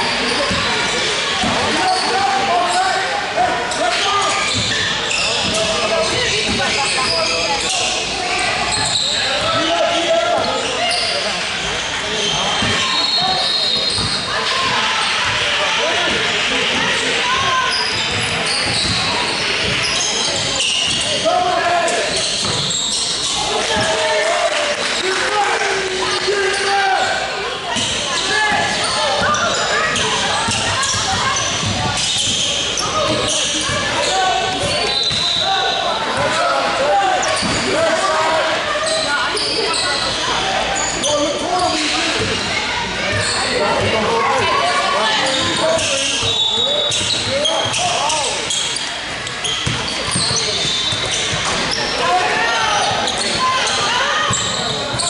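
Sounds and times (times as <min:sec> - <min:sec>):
shoe squeaks: 0:00.0 - 0:03.0, 0:03.7 - 0:24.0, 0:26.1 - 0:36.4, 0:37.0 - 0:55.0
overlapping indistinct voices: 0:00.0 - 0:55.0.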